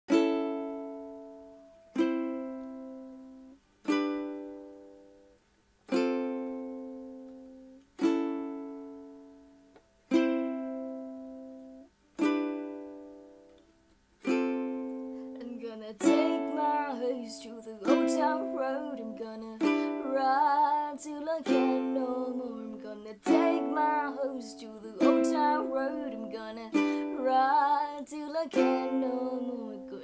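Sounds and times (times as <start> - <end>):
ukulele chords strummed: 0.1 - 5.3, 5.9 - 30.0.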